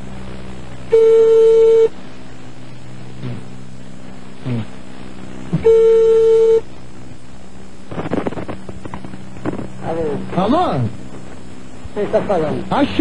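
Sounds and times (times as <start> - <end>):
telephone ringback tone: 0.9 - 1.9, 5.6 - 6.6.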